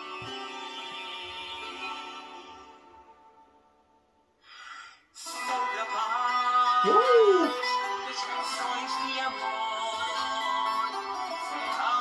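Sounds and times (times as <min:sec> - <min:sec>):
boy singing slow song: 0:05.3 - 0:12.0
guitar accompaniment: 0:06.8 - 0:07.6
man's sliding ooh: 0:06.8 - 0:07.6.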